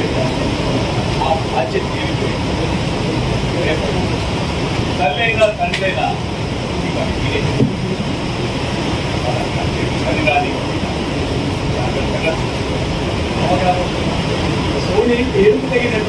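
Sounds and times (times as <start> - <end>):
steady hall hiss: 0.0 - 16.0.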